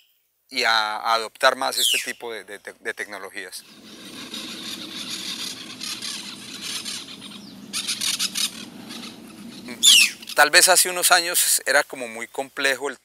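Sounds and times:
low hum: 0:03.6 - 0:10.4
high fine chirring: 0:03.6 - 0:10.8
sharp falling squeal: 0:03.7 - 0:10.4.

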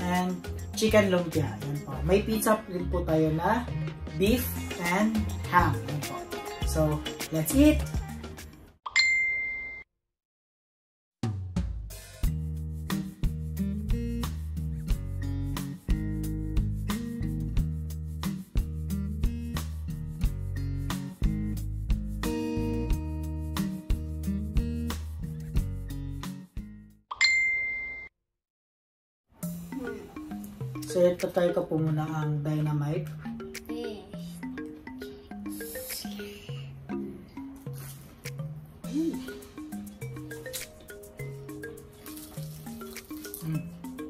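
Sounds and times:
background music: 0:00.0 - 0:08.8, 0:11.6 - 0:26.9, 0:29.4 - 0:44.0
bell-like ding chime: 0:08.9 - 0:09.9, 0:27.1 - 0:28.1
acoustic guitar music: 0:12.8 - 0:26.8.

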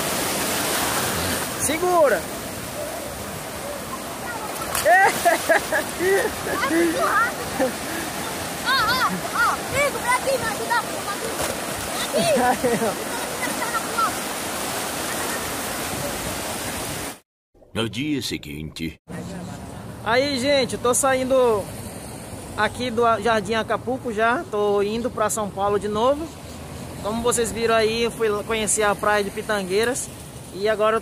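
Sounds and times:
sea surf washing: 0:00.0 - 0:17.2
children shouting: 0:06.4 - 0:14.3.

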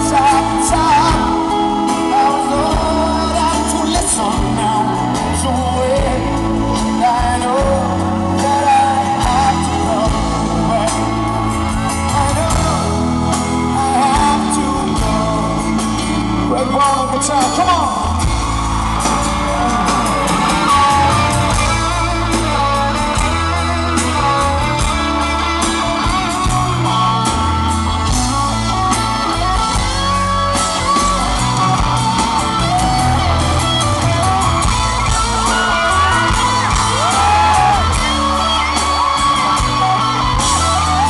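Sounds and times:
male lead vocal singing: 0:00.0 - 0:30.6, 0:35.2 - 0:41.0
live pop band playing: 0:00.0 - 0:41.0.

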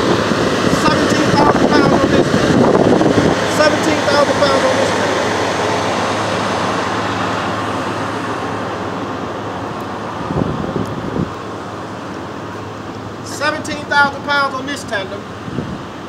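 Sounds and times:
vehicle engine running: 0:00.0 - 0:16.0.

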